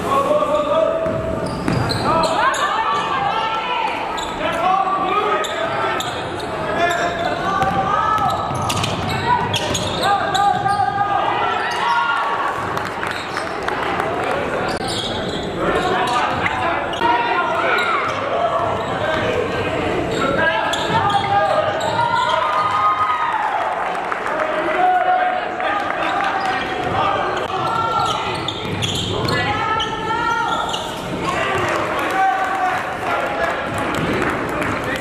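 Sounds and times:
people shouting and chatter: 0:00.0 - 0:35.0.

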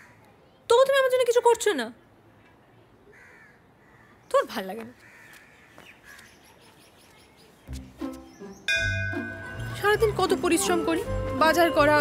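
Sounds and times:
woman speaking: 0:09.6 - 0:12.0.

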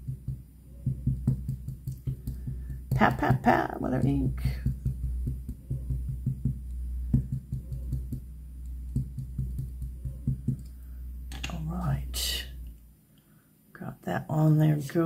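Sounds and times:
ink pad tapping on stamp: 0:00.0 - 0:03.1, 0:04.0 - 0:11.4
low steady hum: 0:00.0 - 0:15.0.

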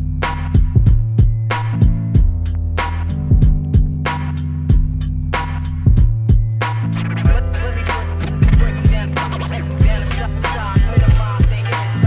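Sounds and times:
hip-hop beat with bass line: 0:00.0 - 0:12.0.

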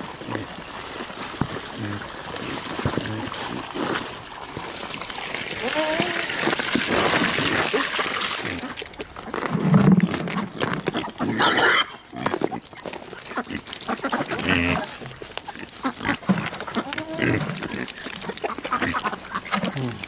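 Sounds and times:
pigs grunting: 0:00.0 - 0:04.1, 0:05.6 - 0:08.8, 0:09.6 - 0:20.0.

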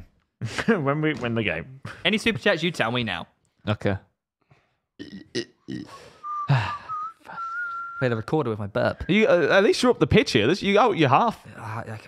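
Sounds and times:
man burping: 0:05.0 - 0:06.8
short whistled notes: 0:06.2 - 0:08.1.

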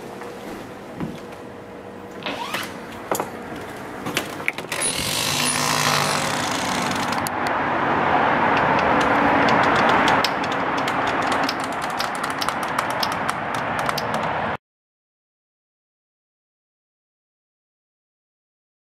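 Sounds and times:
vehicle passing by: 0:04.8 - 0:14.6.

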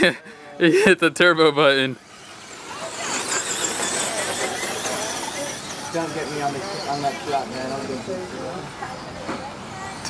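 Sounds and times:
rc truck motor whining: 0:01.7 - 0:09.2.

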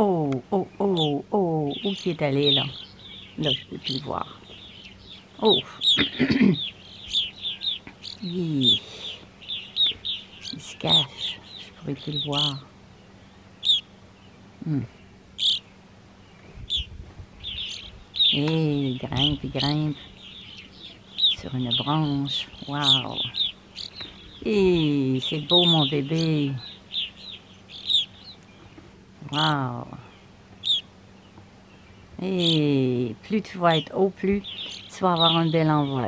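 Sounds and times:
grosbeaks calling: 0:00.0 - 0:36.0.

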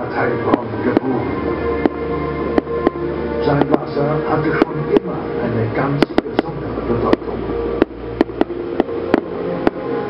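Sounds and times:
held tones: 0:00.0 - 0:10.0
sharp uneven clicks: 0:07.1 - 0:09.8.

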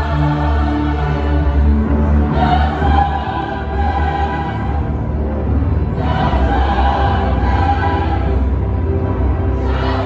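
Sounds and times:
church choir singing: 0:00.0 - 0:10.0
keyboard: 0:00.0 - 0:10.0.

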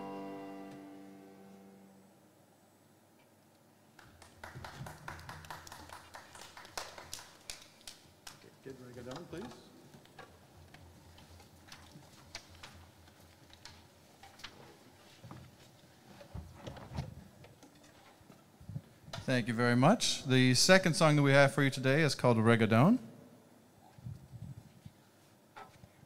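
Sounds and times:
small clicks and knocks: 0:07.5 - 0:15.4.

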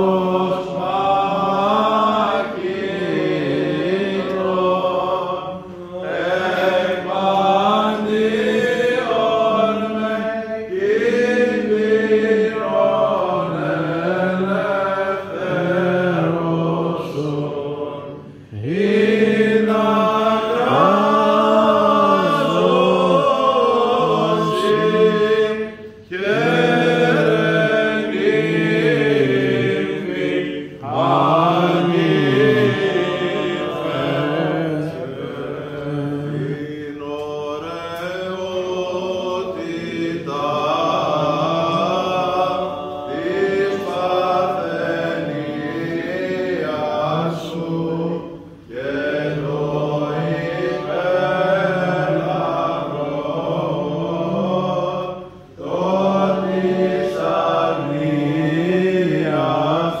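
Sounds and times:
men singing a chant: 0:00.0 - 1:00.0.

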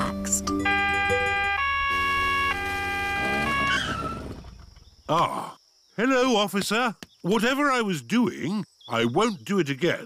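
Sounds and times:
cartoon police siren: 0:00.6 - 0:04.0.

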